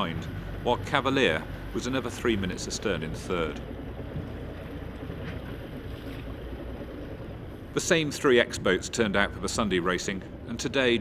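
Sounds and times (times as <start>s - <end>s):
choppy sea water splashing: 0.0s - 8.2s.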